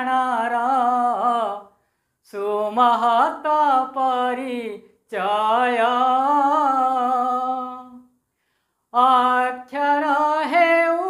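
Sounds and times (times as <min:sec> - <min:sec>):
man singing: 0:00.0 - 0:08.1, 0:08.9 - 0:11.0.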